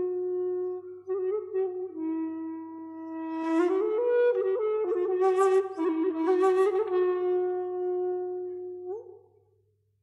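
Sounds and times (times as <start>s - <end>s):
flute holding long note: 0.0s - 9.2s.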